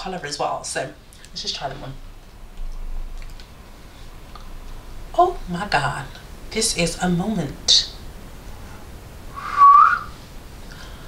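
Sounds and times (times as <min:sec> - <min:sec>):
woman whistling: 0:09.4 - 0:10.2.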